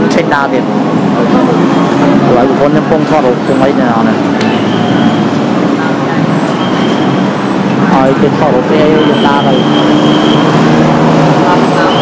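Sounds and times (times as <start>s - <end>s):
man talking: 0.0s - 4.2s, 7.9s - 9.8s
city road traffic: 0.0s - 12.0s.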